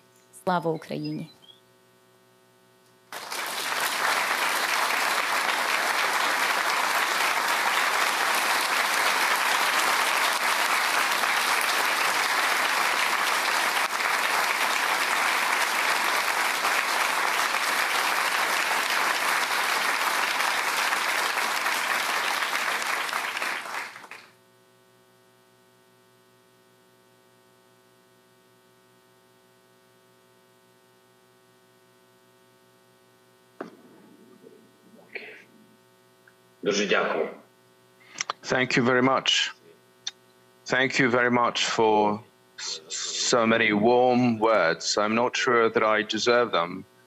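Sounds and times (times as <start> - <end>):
faint hum: 0.0 - 47.0
audience applauding: 3.1 - 24.4.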